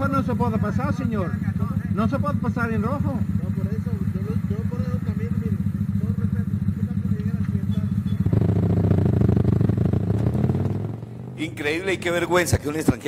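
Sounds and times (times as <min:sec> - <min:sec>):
motorcycle engine revving: 0:00.0 - 0:13.0.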